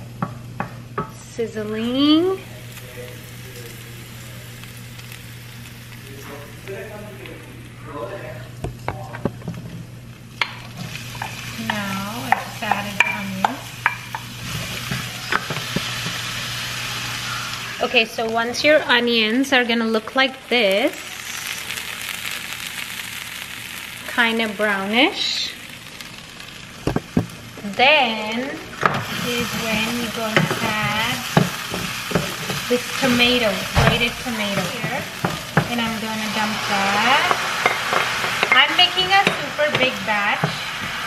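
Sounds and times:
spices sizzling in oil: 0.0 - 7.8, 9.3 - 41.0.

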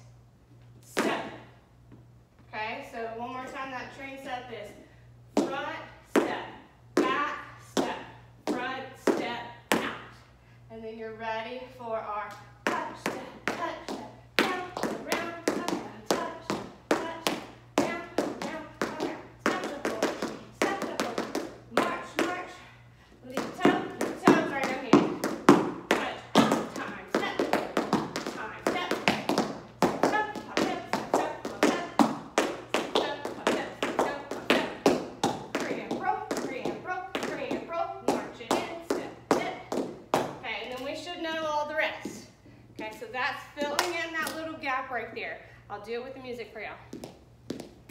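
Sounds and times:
tap shoes on hard floor: 23.4 - 40.4.

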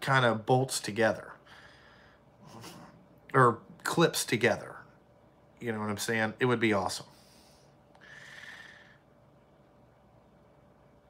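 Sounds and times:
man breathing softly: 1.4 - 2.4, 7.1 - 9.2.

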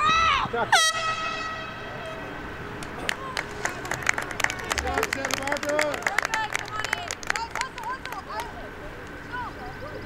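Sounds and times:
horn-like signal blast: 0.7 - 2.0.

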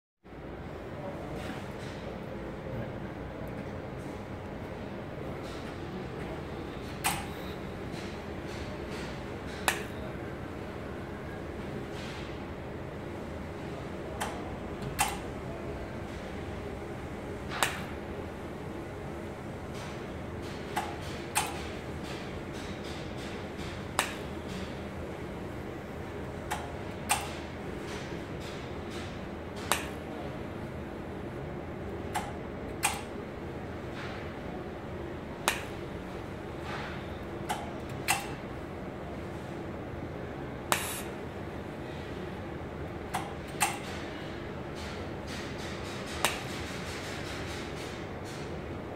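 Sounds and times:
steady hum: 2.2 - 48.9
welding machine sharp snaps: 20.8 - 21.6, 29.6 - 30.0, 32.2 - 33.1, 40.7 - 41.1
sharp welding snap: 40.7 - 41.1.

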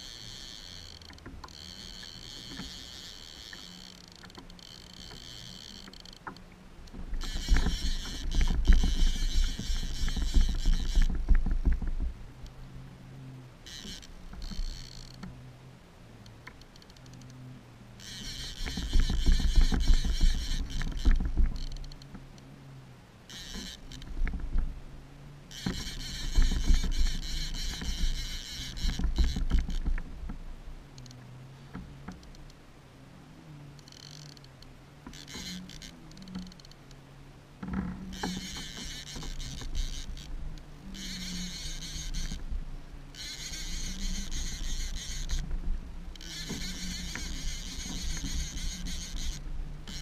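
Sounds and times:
fishing reel soft clicks: 0.0 - 11.2, 13.6 - 15.4, 16.2 - 17.4, 18.0 - 22.5, 23.3 - 24.4, 25.5 - 29.8, 30.9 - 31.3, 32.0 - 32.6, 33.7 - 37.0, 38.1 - 42.5, 43.1 - 45.5, 46.1 - 50.0
low rumble and knocks: 6.2 - 12.6, 18.4 - 22.3, 23.6 - 24.9, 25.6 - 32.4, 43.7 - 50.0.

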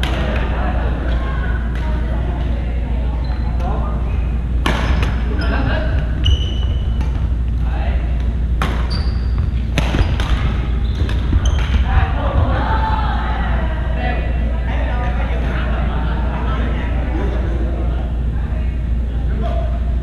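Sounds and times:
steady low hum: 0.0 - 20.0
voices echoing in hall: 0.0 - 20.0
sneakers squeaking on wooden floor: 3.2 - 7.5, 8.6 - 12.5
racket hitting shuttlecock: 4.6 - 5.3, 8.2 - 11.9.

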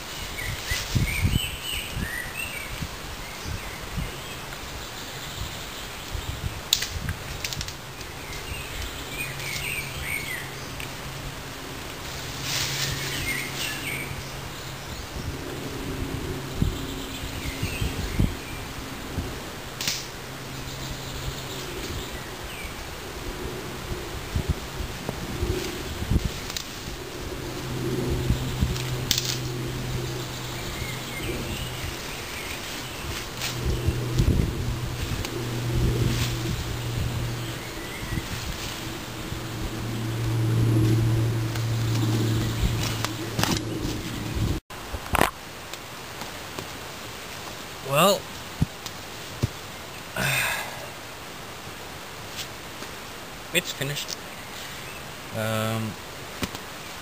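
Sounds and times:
leafy branches rustling: 0.0 - 57.0
low droning hum: 7.8 - 44.6
twigs cracking: 25.0 - 27.8, 28.6 - 29.9, 31.0 - 44.3.

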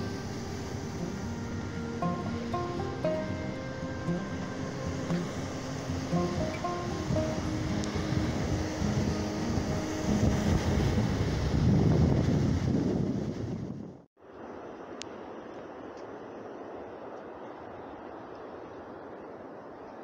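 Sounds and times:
background music held notes: 0.0 - 11.8
ocean surf breaking on rocks: 0.0 - 13.6.

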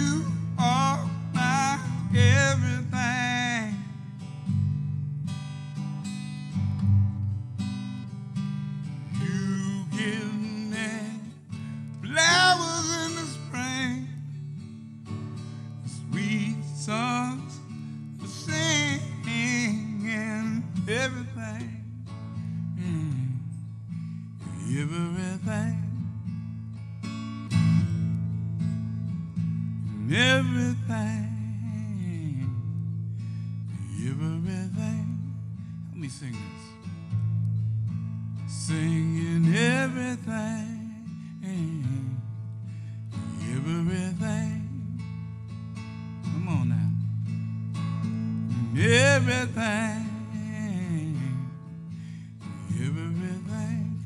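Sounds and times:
man singing with vibrato: 0.0 - 3.9, 9.2 - 11.4, 12.0 - 14.2, 15.9 - 17.6, 18.2 - 22.0, 24.6 - 26.0, 30.0 - 32.5, 33.8 - 35.3, 38.5 - 42.2, 43.3 - 45.0, 46.4 - 47.0, 48.6 - 51.6, 52.5 - 54.0
strummed acoustic guitar: 0.0 - 54.0.

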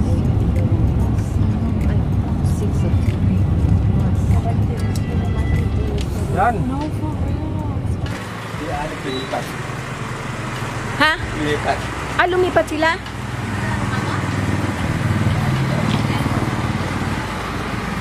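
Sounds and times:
vehicle engine humming: 0.0 - 18.0
voices calling out: 1.8 - 18.0.

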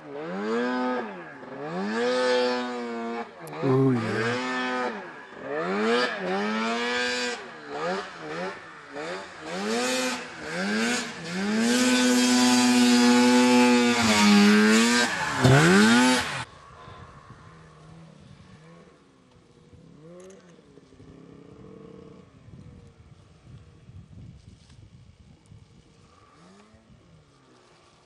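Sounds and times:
snowmobile engine revving: 0.0 - 16.5.

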